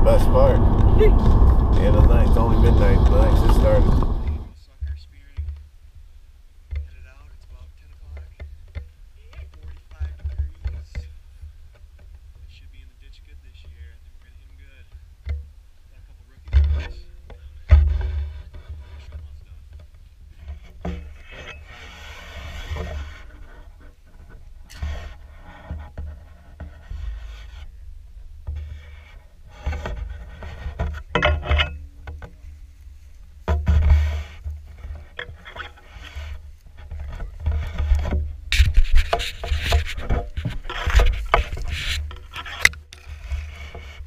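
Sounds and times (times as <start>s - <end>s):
grass and reeds rustling: 0.0s - 44.0s.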